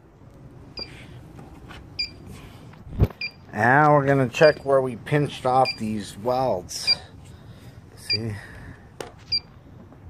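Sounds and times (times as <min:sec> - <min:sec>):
gas leak detector beeping: 0:00.8 - 0:01.0, 0:02.0 - 0:02.2, 0:03.2 - 0:03.5, 0:05.6 - 0:05.9, 0:06.8 - 0:07.1.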